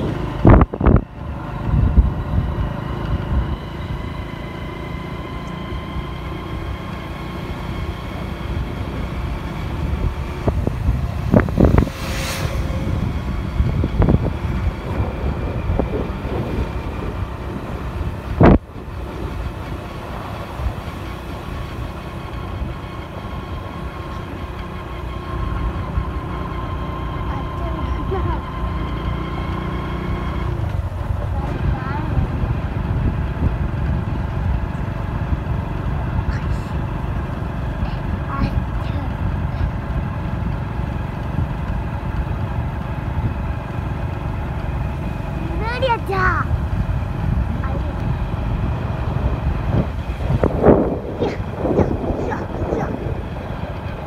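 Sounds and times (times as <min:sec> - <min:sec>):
vehicle engine and road noise: 0:00.0 - 0:54.0.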